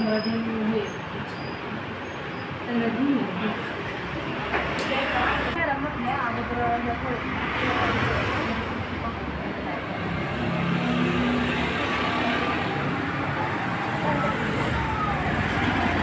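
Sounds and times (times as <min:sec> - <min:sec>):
road traffic rumble: 0:00.0 - 0:16.0.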